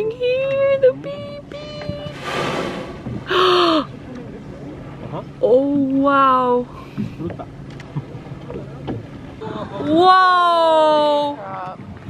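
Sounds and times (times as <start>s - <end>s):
woman gasping: 3.3s - 3.9s.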